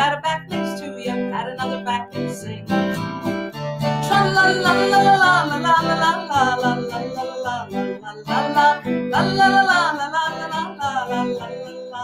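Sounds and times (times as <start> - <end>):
woman singing la la: 0.0 - 3.1, 3.8 - 12.0
strummed acoustic guitar: 0.0 - 12.0.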